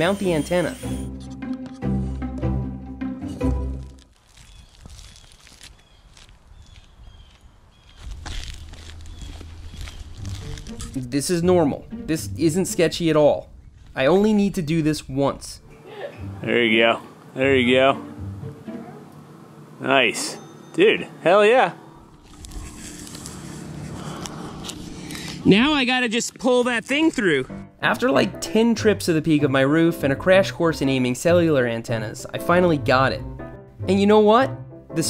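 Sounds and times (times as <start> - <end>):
footsteps on shingle roof: 4.2 - 10.6
wind rumble on microphone: 13.4 - 14.3.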